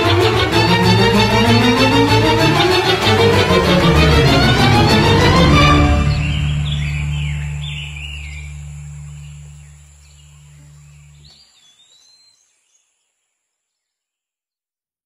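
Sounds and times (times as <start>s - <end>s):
low steady drone: 0.0s - 11.3s
birds chirping: 3.8s - 12.9s.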